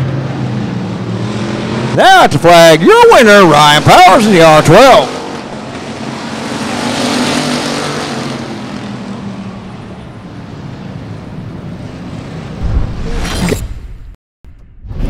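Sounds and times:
race car engines: 0.0 - 13.2.

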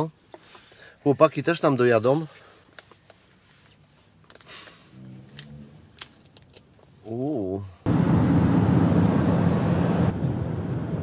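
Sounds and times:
road and wind noise: 4.9 - 6.9, 7.8 - 11.0
low engine hum: 7.9 - 11.0.

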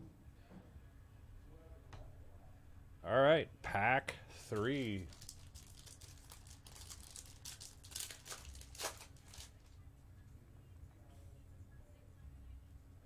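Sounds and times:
foil wrapper tearing and crinkling: 4.5 - 9.7.

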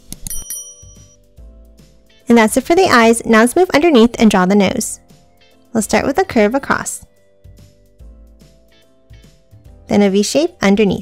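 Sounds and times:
soft background music: 0.0 - 11.0
bright bell ding: 0.2 - 1.2.

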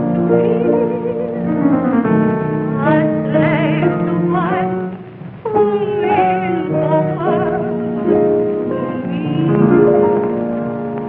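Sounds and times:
woman singing with vibrato: 0.0 - 10.1
piano accompaniment: 0.0 - 11.0.

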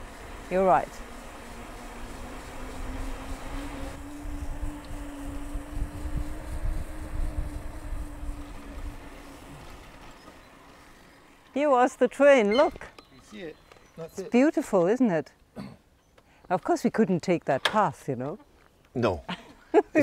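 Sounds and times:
steady low hum: 0.0 - 11.5
bicycle road rumble: 0.0 - 20.0
wind buffeting microphone: 2.6 - 10.0.

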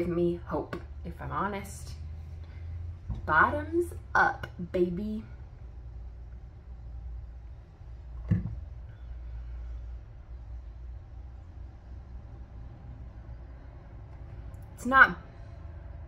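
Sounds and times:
steady low hum: 0.0 - 16.0
person swallowing: 8.2 - 8.6.

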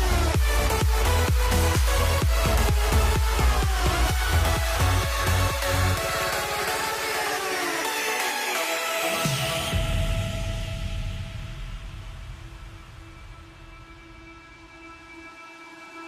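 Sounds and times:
electronic music with synths: 0.0 - 16.0.

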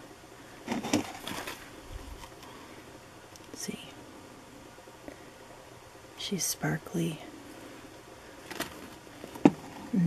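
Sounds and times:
faint steady hiss: 0.0 - 10.0
woman whispering: 3.6 - 4.0, 6.2 - 7.3.

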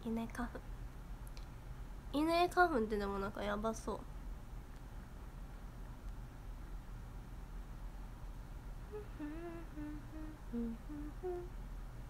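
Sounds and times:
woman humming: 8.9 - 11.6.

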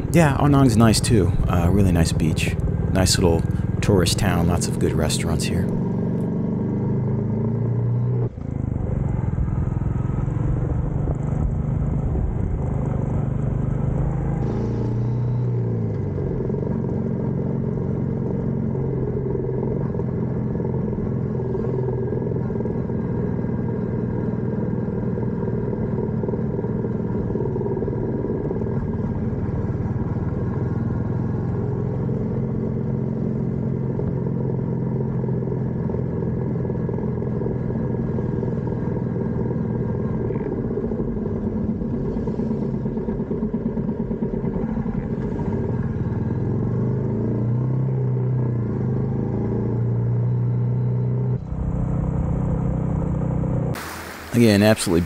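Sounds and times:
motorcycle engine running: 0.0 - 53.8.

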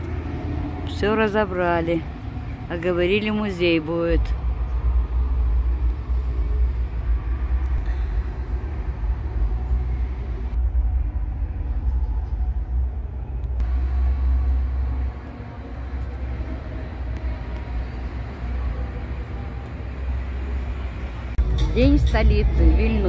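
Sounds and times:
city traffic rumble: 0.0 - 23.0.

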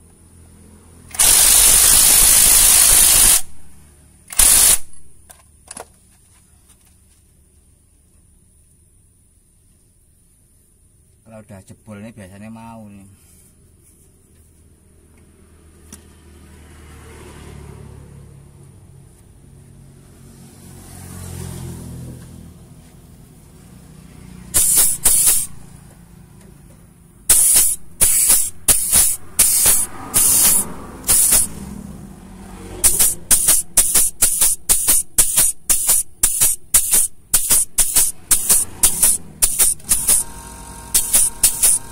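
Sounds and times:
impact wrench hissing bursts: 1.1 - 5.1, 24.5 - 25.7, 27.2 - 31.7, 32.8 - 41.9.

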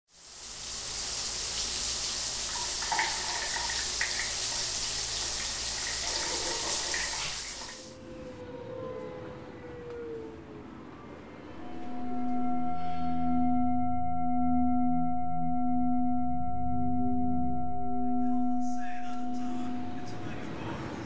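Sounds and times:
shower spray running: 0.1 - 8.0
soft sliding chime tone: 11.6 - 14.5.

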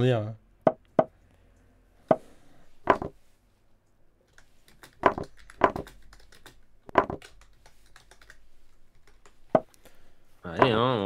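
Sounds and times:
computer keyboard typing: 4.3 - 9.7.

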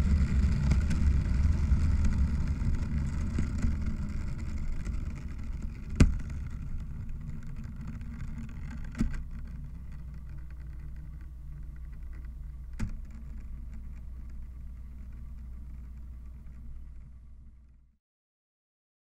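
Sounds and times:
dense low noise: 0.0 - 18.0.

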